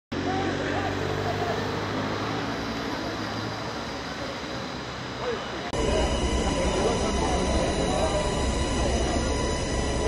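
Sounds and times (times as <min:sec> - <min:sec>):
crowd voices: 0:00.2 - 0:10.0.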